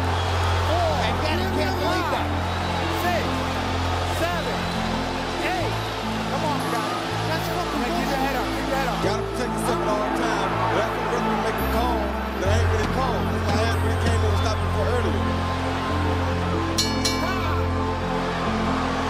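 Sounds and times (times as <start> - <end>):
gliding melodic line: 0.0 - 19.0.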